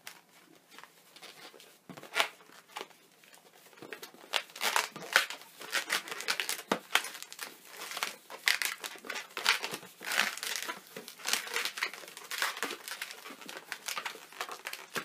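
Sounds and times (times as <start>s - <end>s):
balloons squeaking and rubbing: 0.0s - 15.0s.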